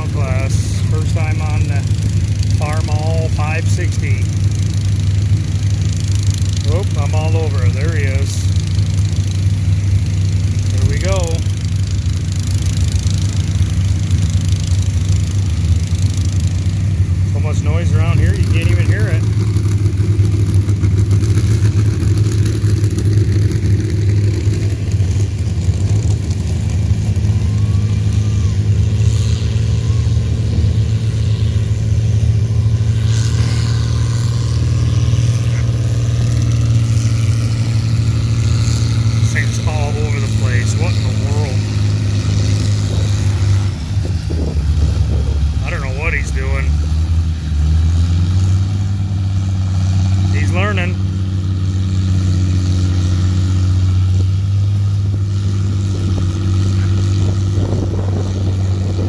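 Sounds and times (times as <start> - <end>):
tractor engine under heavy load: 0.0 - 59.0.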